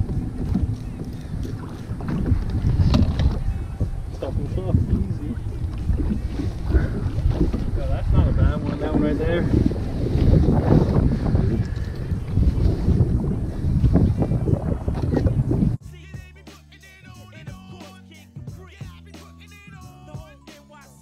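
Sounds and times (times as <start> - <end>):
wind buffeting microphone: 0.0 - 15.8.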